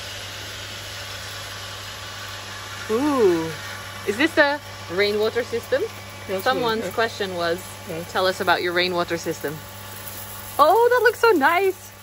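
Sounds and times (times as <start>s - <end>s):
pump electric hum: 0.0s - 12.0s.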